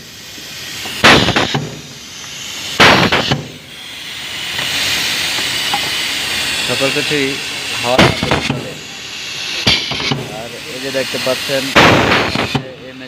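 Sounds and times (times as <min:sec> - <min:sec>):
compressed air bursts: 0:00.0 - 0:13.0
steady air hiss: 0:00.0 - 0:13.0.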